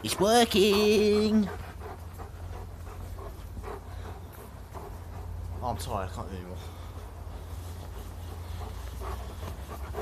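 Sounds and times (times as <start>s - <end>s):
soft panting breaths: 0.0s - 10.0s.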